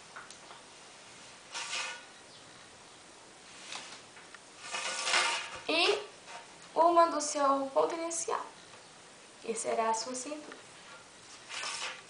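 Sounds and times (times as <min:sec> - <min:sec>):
ruler scraping across paper: 0:01.5 - 0:02.1, 0:04.6 - 0:06.5, 0:10.9 - 0:12.0.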